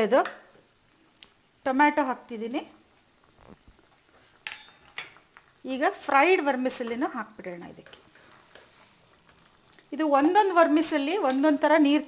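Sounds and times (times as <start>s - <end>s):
vegetables sizzling in a pot: 0.0s - 12.0s
woman speaking: 10.0s - 12.0s.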